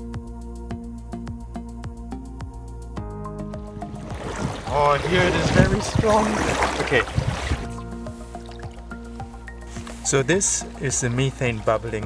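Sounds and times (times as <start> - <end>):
background music: 0.0 - 12.0
bubbles plopping in water: 3.7 - 7.8, 8.4 - 8.8.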